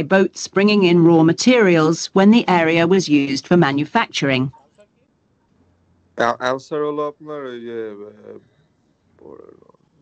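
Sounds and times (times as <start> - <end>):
person speaking: 0.0 - 4.8, 6.2 - 8.4, 9.2 - 9.7
soft chuckle: 6.2 - 8.4.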